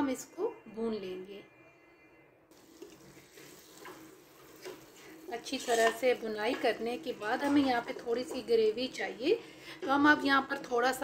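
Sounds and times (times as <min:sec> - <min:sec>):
food sizzling in pot: 0:02.5 - 0:11.0
wooden spatula scraping: 0:02.8 - 0:08.7.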